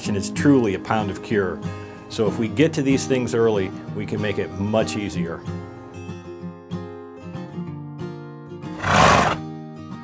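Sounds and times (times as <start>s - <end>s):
acoustic guitar music: 0.0s - 10.0s
horse whinny: 8.7s - 9.4s.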